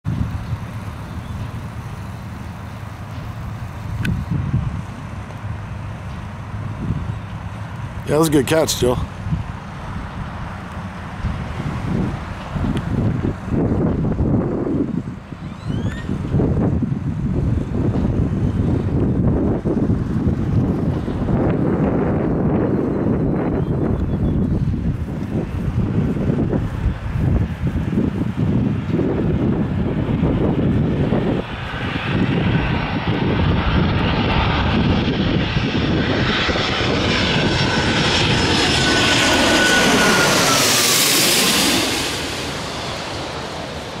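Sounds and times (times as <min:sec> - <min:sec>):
jet plane passing overhead: 0:00.1 - 0:44.0.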